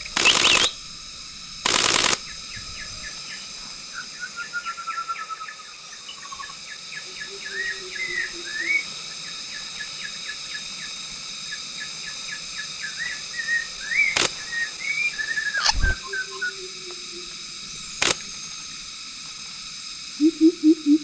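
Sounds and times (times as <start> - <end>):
bird calls: 0.0 - 0.8, 12.7 - 17.3
high insect drone: 0.0 - 21.0.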